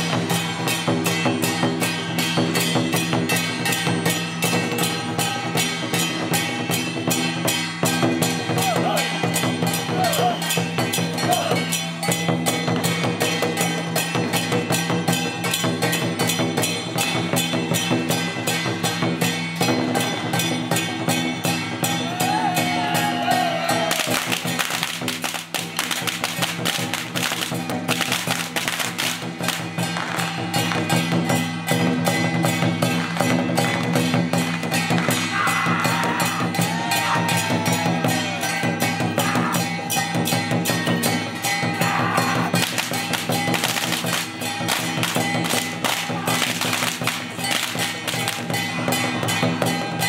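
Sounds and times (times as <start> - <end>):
drum strokes: 0.0 - 50.0
gongs beating: 0.0 - 50.0
hand cymbals clashing: 0.0 - 50.0.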